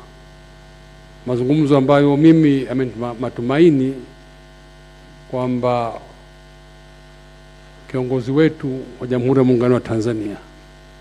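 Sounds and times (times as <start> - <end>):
electrical mains hum: 0.0 - 11.0
man speaking into a microphone: 1.2 - 4.2, 5.3 - 6.2, 7.9 - 10.6.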